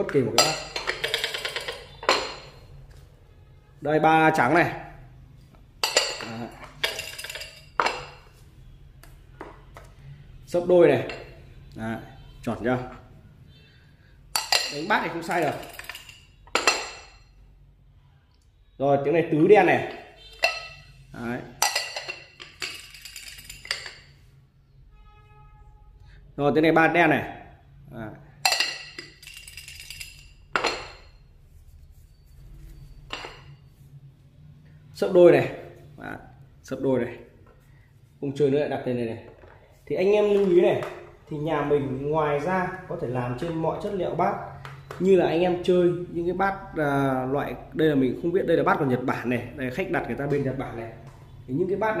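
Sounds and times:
counters rattling in porcelain bowl: 0.2 - 2.6, 5.8 - 8.2, 14.4 - 17.2, 21.6 - 24.1, 28.4 - 31.2
discs rattling in a bowl: 0.8 - 2.0, 22.4 - 23.9, 29.0 - 30.3.

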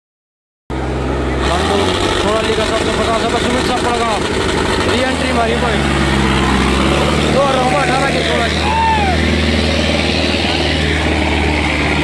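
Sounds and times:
tractor diesel engine running: 0.7 - 12.0
crowd voices: 1.0 - 12.0.

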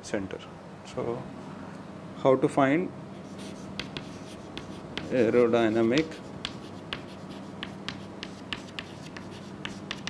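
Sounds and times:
faint steady hum: 0.0 - 10.0
chalk tapping and scratching: 3.2 - 10.0.

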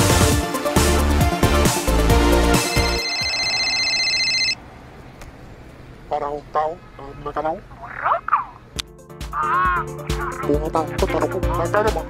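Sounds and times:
mobile phone ringing: 2.4 - 4.6.

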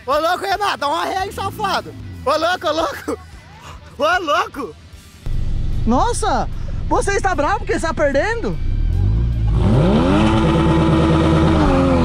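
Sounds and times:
sports car engine revving: 8.5 - 12.0.

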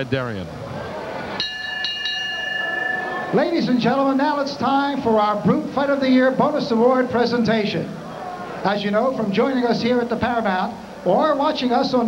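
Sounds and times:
low arena background noise: 0.0 - 12.0
boxing ring bell: 1.4 - 4.0.

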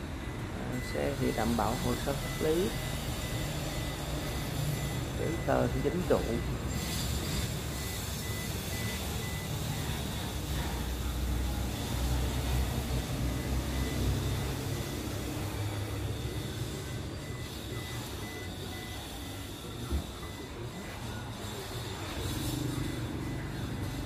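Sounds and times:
faint rapid beeping: 0.0 - 24.0.

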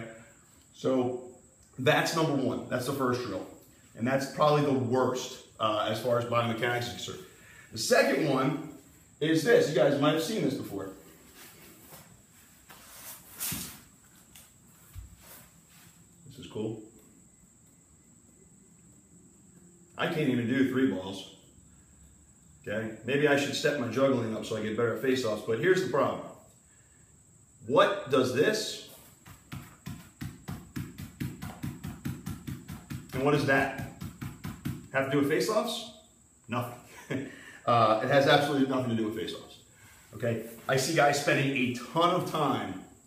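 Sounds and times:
rustling: 10.9 - 16.2
rubber ball bouncing on turf: 29.2 - 35.0.

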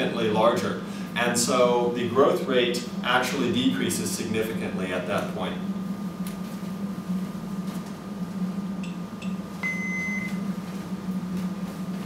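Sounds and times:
low electrical hum: 0.0 - 12.0
short electronic beep: 9.6 - 10.4.

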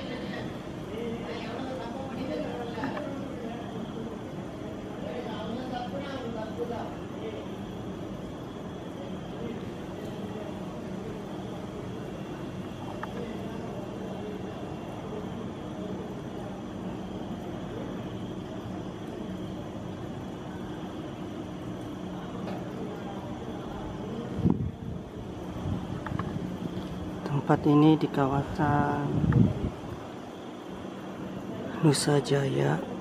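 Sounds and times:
faint steady tones: 0.0 - 33.0
low background hum: 0.0 - 33.0.

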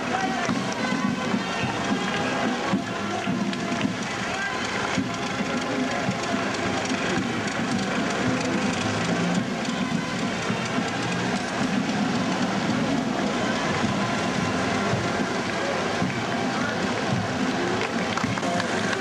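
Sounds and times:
crowd clapping: 0.0 - 19.0
music with held notes: 0.0 - 19.0
vehicle engines driving past: 4.0 - 19.0.

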